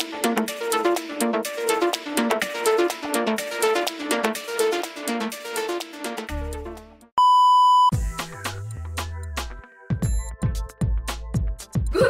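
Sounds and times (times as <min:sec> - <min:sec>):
electronic censor bleep: 0:07.2 - 0:08.0
music with stepping bass line: 0:07.9 - 0:12.0.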